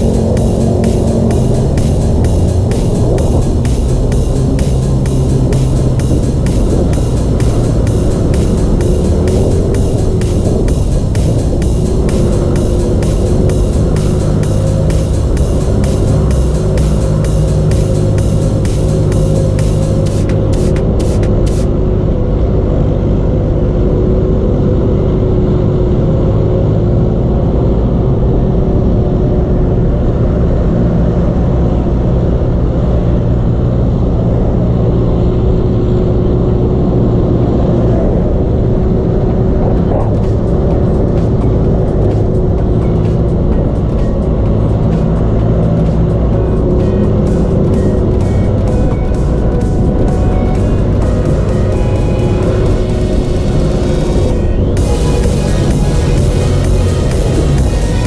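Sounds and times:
motorcycle engine running: 0:00.0 - 0:58.0
wind and road noise: 0:00.0 - 0:58.0.

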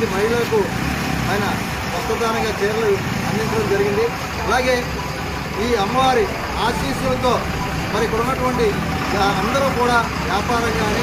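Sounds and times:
road traffic noise: 0:00.0 - 0:11.0
man speaking: 0:05.6 - 0:10.9.

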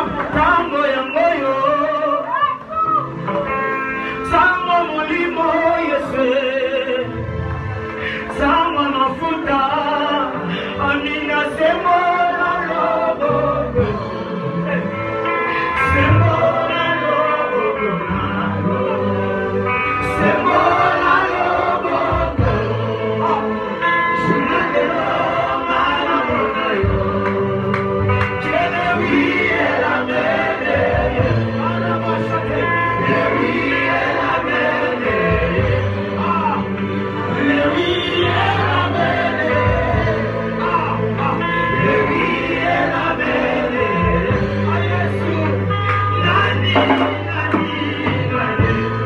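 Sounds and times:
backing singers: 0:00.0 - 0:49.0
keyboard accompaniment: 0:00.0 - 0:49.0
male lead singer: 0:00.0 - 0:49.0
low bass line: 0:15.8 - 0:49.0.

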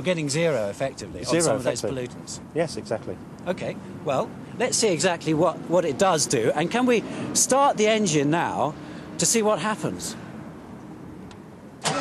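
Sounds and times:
diesel engine starting: 0:11.8 - 0:12.0.

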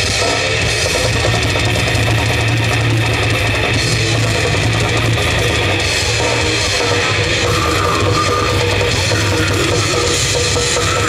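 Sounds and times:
distorted guitars and bass: 0:00.0 - 0:11.0
very fast drumming: 0:00.0 - 0:11.0.

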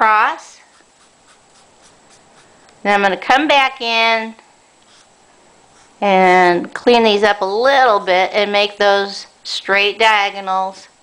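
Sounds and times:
marker scratching on paper: 0:00.6 - 0:02.6, 0:04.9 - 0:05.1, 0:05.7 - 0:06.0.

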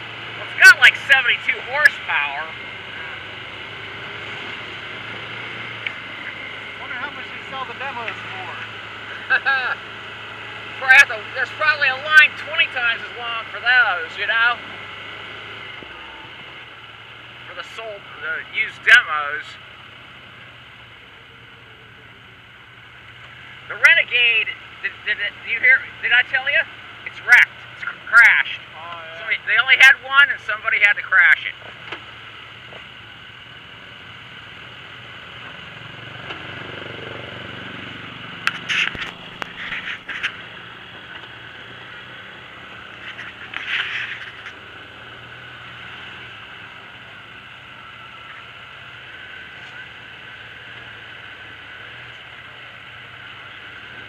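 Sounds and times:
vehicle engine humming: 0:00.0 - 0:54.0
wind and driving noise: 0:00.0 - 0:54.0
short scraping rattles: 0:38.5 - 0:40.5, 0:43.0 - 0:44.6.

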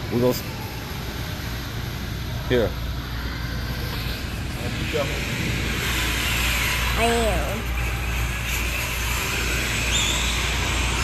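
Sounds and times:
indoor hall background rumble: 0:00.0 - 0:11.0.

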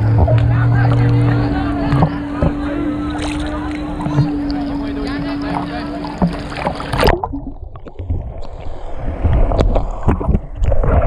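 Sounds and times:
steady low hum: 0:00.0 - 0:10.1
water sloshing and splashing: 0:00.0 - 0:11.0
camera splashing into water: 0:03.1 - 0:04.6, 0:05.5 - 0:08.6.

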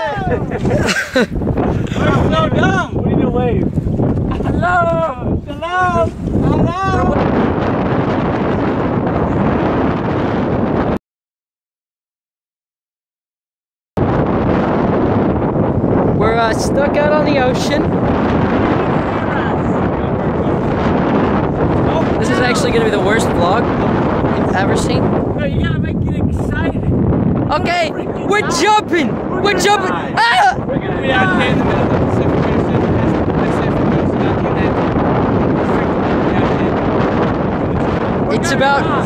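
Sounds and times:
wind buffeting microphone: 0:00.0 - 0:11.0, 0:14.0 - 0:39.0.

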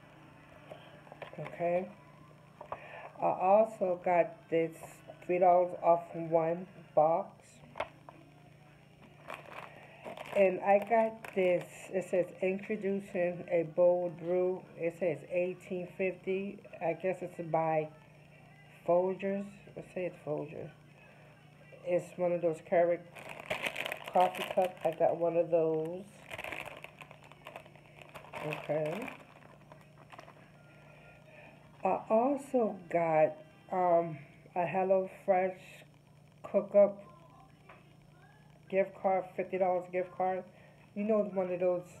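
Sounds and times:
plastic bag crinkling: 0:09.0 - 0:11.9, 0:23.0 - 0:30.5.

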